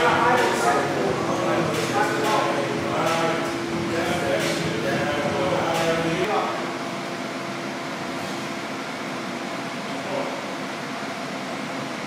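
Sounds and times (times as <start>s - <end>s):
room noise hum: 0.0s - 12.0s.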